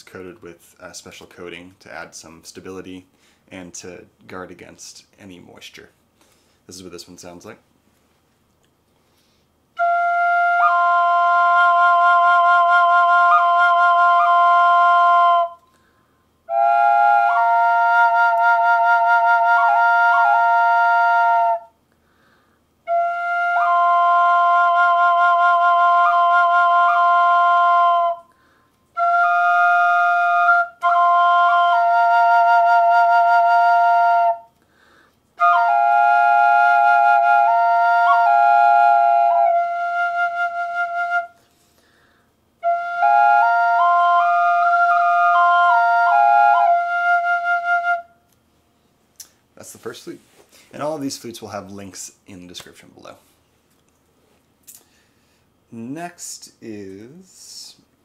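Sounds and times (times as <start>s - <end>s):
pentatonic flute melody: 9.8s - 15.7s, 16.5s - 21.8s, 22.8s - 34.6s, 35.4s - 41.4s, 42.6s - 48.2s
flute drone note: 42.6s - 48.1s.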